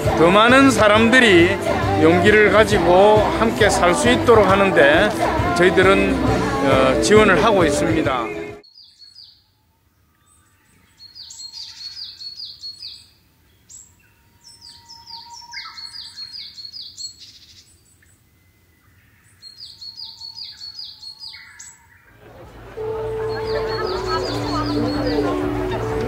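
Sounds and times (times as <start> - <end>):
songbird chirping: 8.6 - 26.0.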